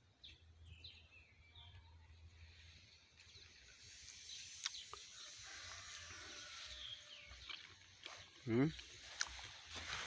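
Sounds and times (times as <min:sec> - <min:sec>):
birds chirping: 0:00.0 - 0:10.0
faint outdoor ambience: 0:00.0 - 0:10.0.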